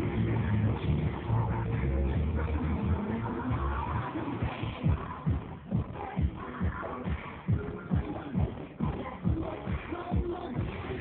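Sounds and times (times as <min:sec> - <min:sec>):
dance music with heavy bass drum: 0:00.0 - 0:11.0.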